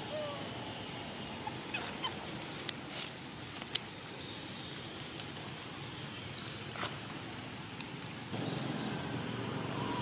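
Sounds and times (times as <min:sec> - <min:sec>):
monkey squeaking: 0:01.7 - 0:02.2.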